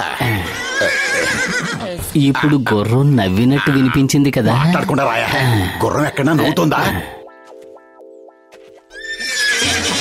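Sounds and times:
cartoon background music: 5.8 - 10.0
horse whinny sound effect: 9.0 - 10.0.

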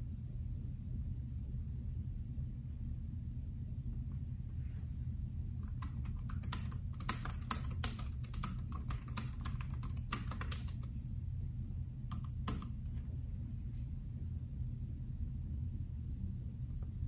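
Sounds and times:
keyboard keys clicking: 5.6 - 10.9, 12.1 - 13.0.

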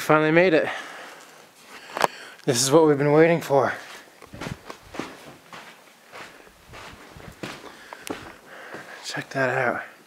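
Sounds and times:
footsteps on loose rocks: 3.8 - 9.0.

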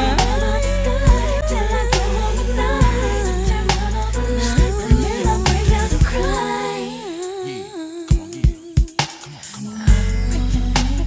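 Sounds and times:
bass and beat: 0.0 - 6.6, 9.9 - 11.0
female vocals singing: 0.0 - 11.0.

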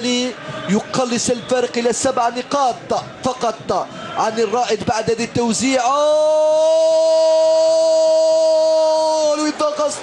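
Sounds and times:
commentator shouting goal: 0.0 - 10.0.

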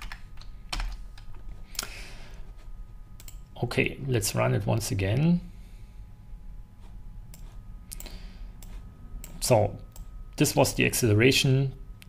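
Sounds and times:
computer keyboard typing: 0.0 - 1.4, 7.3 - 10.1.

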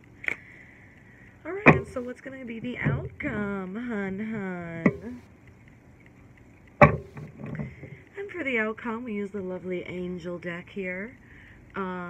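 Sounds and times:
phone handling noise: 1.5 - 2.1, 6.7 - 7.9
sharp thump: 1.6 - 2.1, 6.8 - 7.3.

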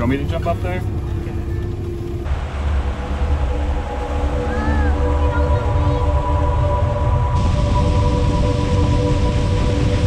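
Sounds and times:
motorboat engine rumble: 0.0 - 10.0.

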